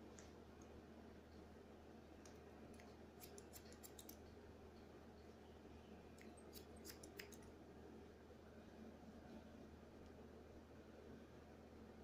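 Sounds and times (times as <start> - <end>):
scissors snipping hair: 2.3 - 4.3, 6.2 - 7.5.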